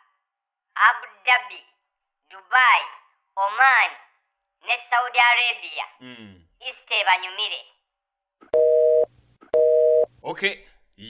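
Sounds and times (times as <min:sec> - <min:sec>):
telephone busy signal beeps: 0:08.6 - 0:10.1.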